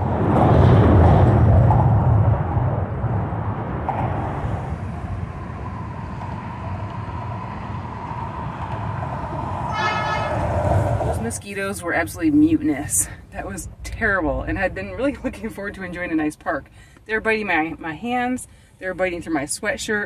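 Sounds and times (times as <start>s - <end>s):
traffic rumbling over bridge: 0.0s - 20.0s
short high tone: 9.7s - 10.6s.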